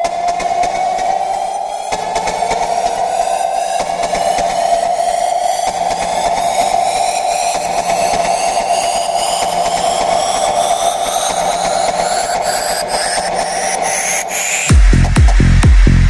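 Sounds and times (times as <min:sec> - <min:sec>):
rising synth sweep: 0:00.0 - 0:15.1.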